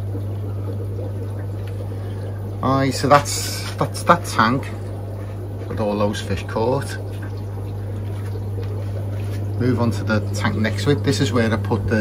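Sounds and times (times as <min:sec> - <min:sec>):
aquarium equipment humming: 0:00.0 - 0:12.0
water trickling from sponge filters: 0:00.0 - 0:12.0.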